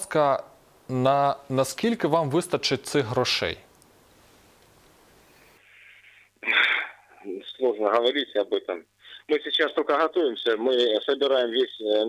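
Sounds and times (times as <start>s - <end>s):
man breathing over telephone: 5.5s - 7.0s, 9.0s - 9.3s.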